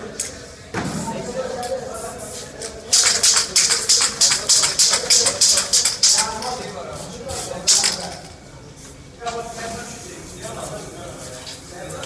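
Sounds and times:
spray paint can hissing: 2.0s - 6.6s, 7.3s - 8.9s.

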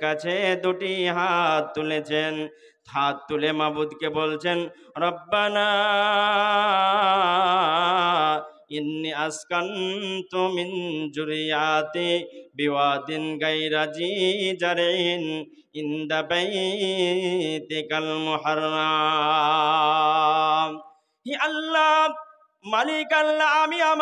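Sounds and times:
man chanting into microphone: 0.0s - 24.0s.

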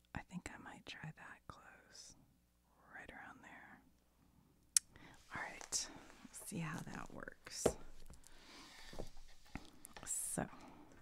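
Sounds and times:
woman speaking softly: 0.1s - 2.2s, 5.2s - 7.8s, 10.0s - 10.6s.

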